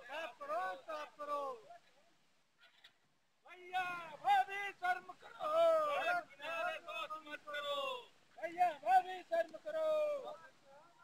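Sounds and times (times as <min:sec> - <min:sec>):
men shouting slogans: 0:00.0 - 0:01.7, 0:03.5 - 0:11.0.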